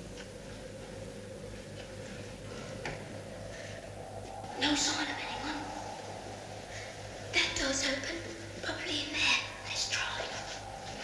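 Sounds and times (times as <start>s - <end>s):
child whispering: 4.4s - 11.0s.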